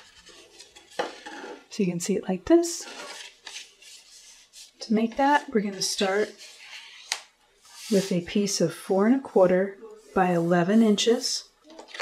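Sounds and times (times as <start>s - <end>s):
cardstock rustling and sliding: 2.8s - 8.2s
person speaking: 4.8s - 6.5s, 7.8s - 11.7s.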